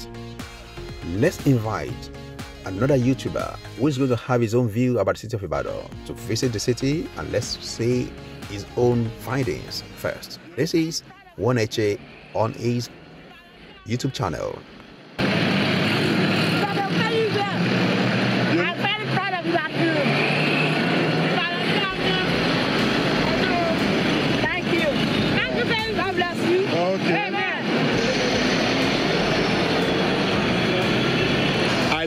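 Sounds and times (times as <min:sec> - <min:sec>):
traffic and running engines: 0:05.5 - 0:32.0
people's voices: 0:06.3 - 0:14.6, 0:16.1 - 0:17.7, 0:18.4 - 0:20.4, 0:21.2 - 0:32.0.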